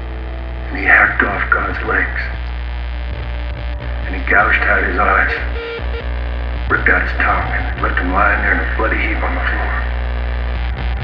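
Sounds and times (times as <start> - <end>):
amplifier mains hum: 0.0 - 11.0
sampled spoken voice: 0.7 - 2.4, 4.0 - 5.5, 6.7 - 9.9.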